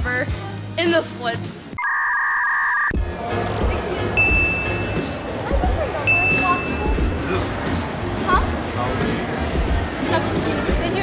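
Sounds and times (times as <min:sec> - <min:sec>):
background music with low beat: 0:02.9 - 0:11.0
flat two-tone electronic beep: 0:04.2 - 0:05.2, 0:06.1 - 0:07.1.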